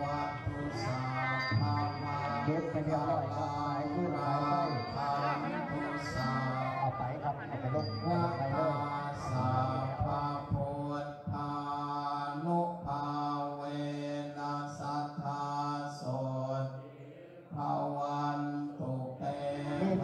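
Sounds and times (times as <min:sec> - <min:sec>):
monks chanting in monotone: 0:00.0 - 0:20.0.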